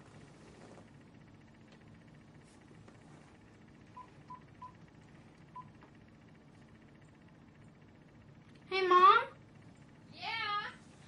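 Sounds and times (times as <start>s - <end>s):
phone keypad beeps: 5.5s - 5.8s.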